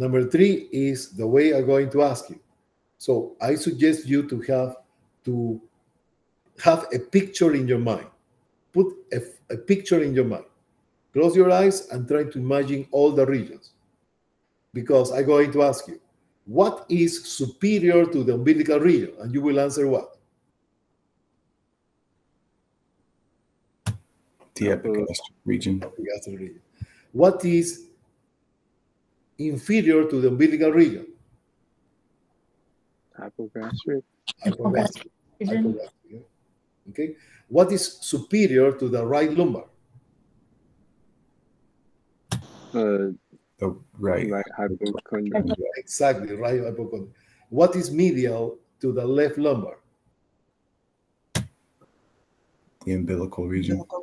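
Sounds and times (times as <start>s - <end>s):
short pop: 42.3s - 42.8s.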